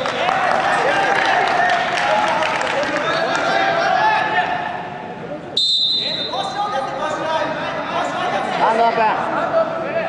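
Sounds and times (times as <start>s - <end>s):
referee's whistle: 5.6s - 6.5s.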